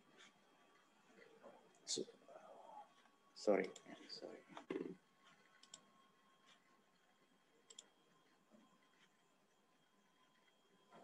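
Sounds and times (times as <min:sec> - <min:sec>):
computer mouse clicks: 0:03.7 - 0:04.0, 0:05.5 - 0:05.9, 0:06.5 - 0:07.9.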